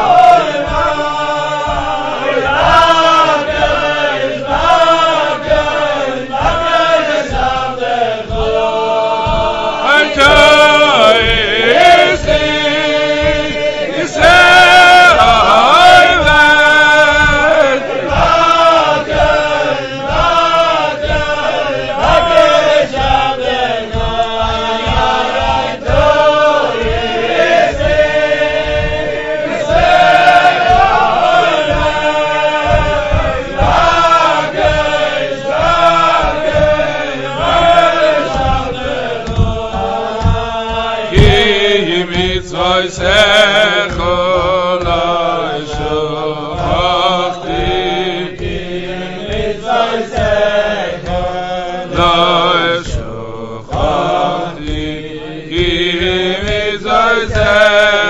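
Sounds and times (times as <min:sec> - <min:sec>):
steady low beat: 0:00.0 - 0:58.0
voices singing: 0:00.0 - 0:58.0.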